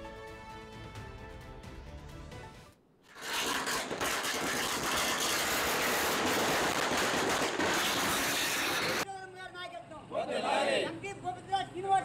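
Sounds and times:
firecrackers crackling: 3.0 - 9.0.

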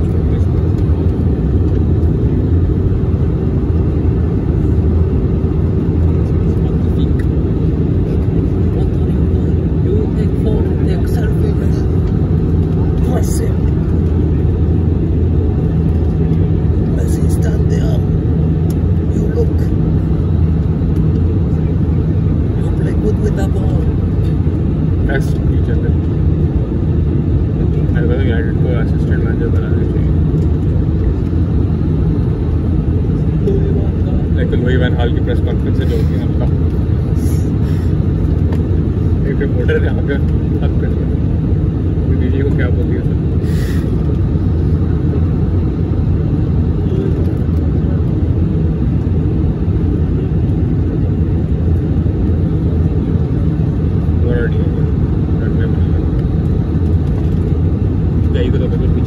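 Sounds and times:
airplane cabin roar: 0.0 - 59.0.

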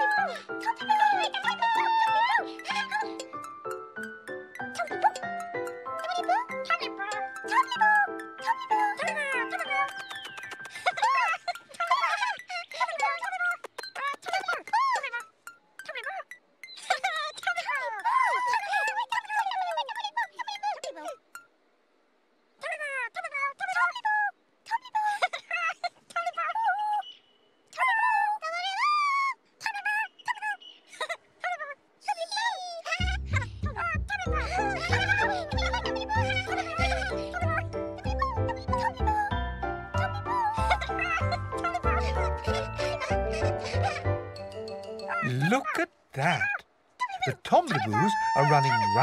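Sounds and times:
children's tv music with bass: 0.0 - 11.6, 33.0 - 46.4, 47.3 - 49.0
high-pitched babbling character voices: 0.0 - 21.5, 27.8 - 49.0.

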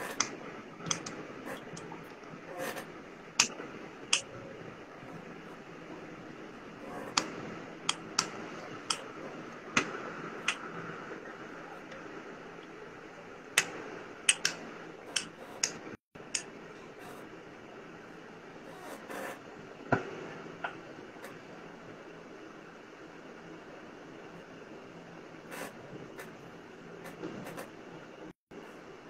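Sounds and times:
sharp taps and clicks: 13.6 - 16.5.

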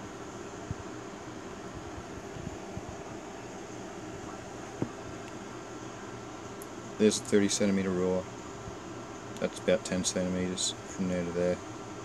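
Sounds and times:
ventilation fan whirring: 0.0 - 12.0.

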